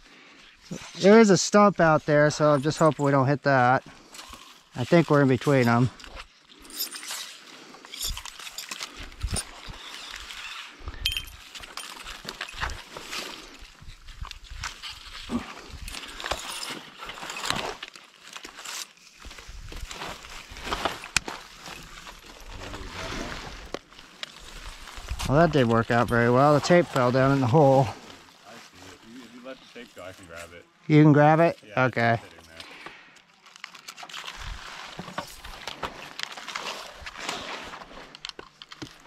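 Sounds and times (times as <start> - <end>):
branches rustling: 0.1 - 39.0
cracks knocks and scrapes: 11.5 - 22.9, 32.7 - 39.0.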